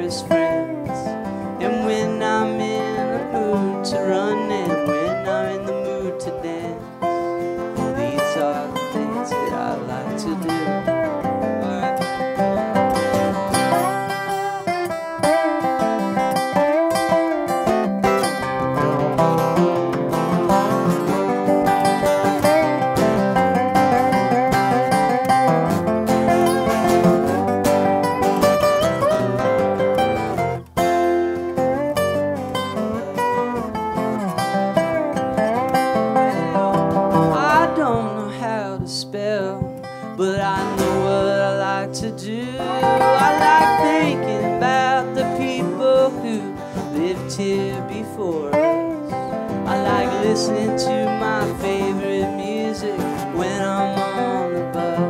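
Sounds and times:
slide guitar: 0.0s - 55.0s
strummed acoustic guitar: 0.0s - 55.0s.

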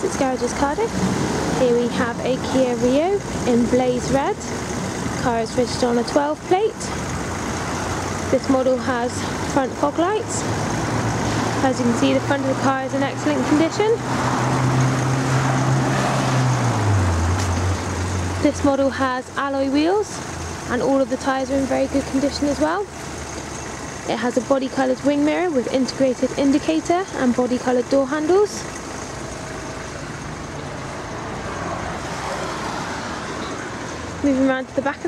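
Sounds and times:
car engine idling: 0.0s - 35.0s
road traffic going by: 0.0s - 35.0s.

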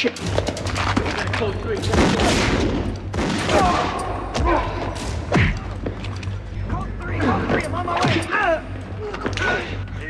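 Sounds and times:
gunshots ringing in a hall: 0.0s - 6.4s
people shouting: 3.4s - 5.8s.

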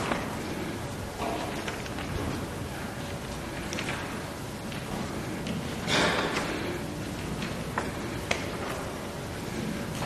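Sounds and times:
hiss-like room noise: 0.0s - 10.0s.

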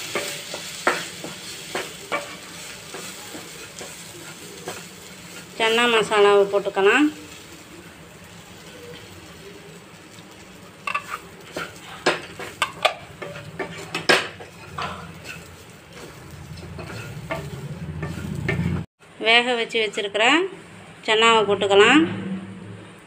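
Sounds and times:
wooden spatula scraping a pan: 0.0s - 9.4s, 10.2s - 18.9s
faint sizzle: 0.0s - 21.8s.

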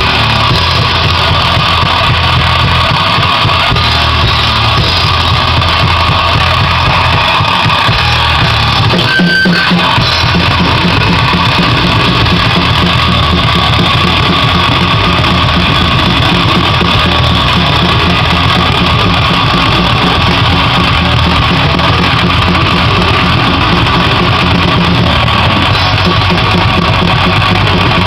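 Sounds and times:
metal-punk band playing loud: 0.0s - 28.0s.

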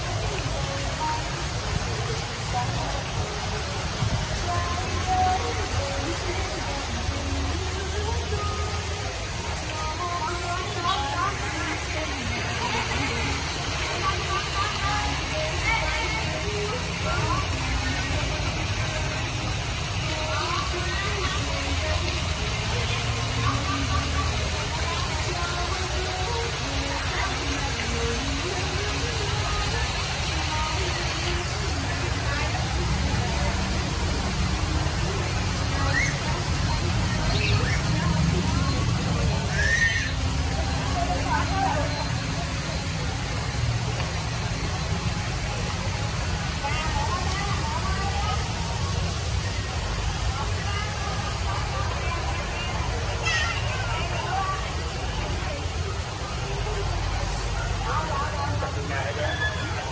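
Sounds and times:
indistinct chatter of people: 0.0s - 59.9s
street traffic: 0.0s - 59.9s
waterfall splashing into pool: 0.0s - 59.9s.

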